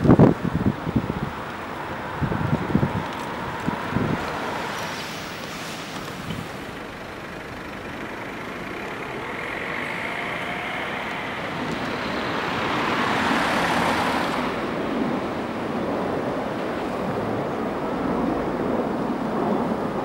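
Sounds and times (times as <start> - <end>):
steady road hum: 0.0 - 20.0
motor vehicle passing: 0.1 - 15.7.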